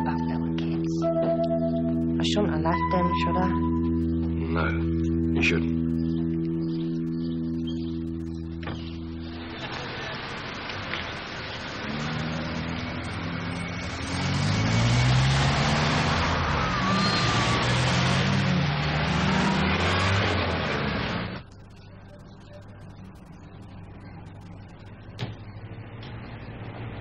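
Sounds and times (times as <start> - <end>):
plucked guitar music: 0.0 - 9.6
cars driving past: 8.6 - 21.4, 25.3 - 27.0.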